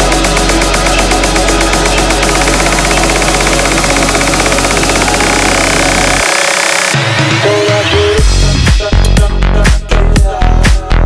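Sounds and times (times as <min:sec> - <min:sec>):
electronic dance music: 0:00.0 - 0:10.8.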